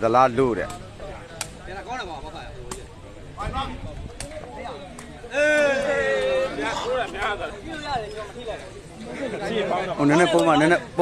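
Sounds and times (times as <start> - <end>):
faint spectators' voices: 0.0 - 11.0.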